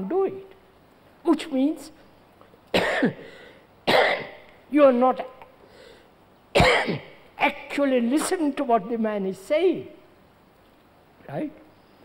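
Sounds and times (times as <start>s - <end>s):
elderly man coughing: 2.7s - 4.4s, 6.6s - 7.2s.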